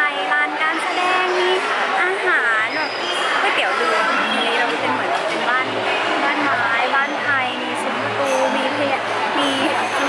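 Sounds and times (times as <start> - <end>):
woman talking: 0.0 - 10.0.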